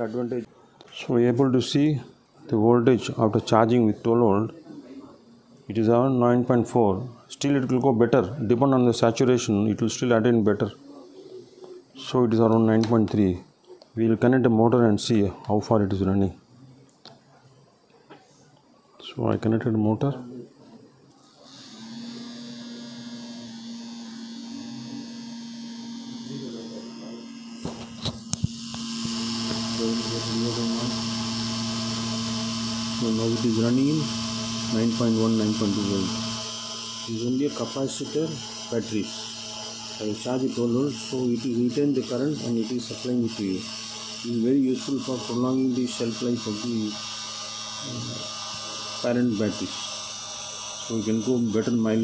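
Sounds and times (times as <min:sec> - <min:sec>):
small motor fan humming: 0:21.1 - 0:52.0.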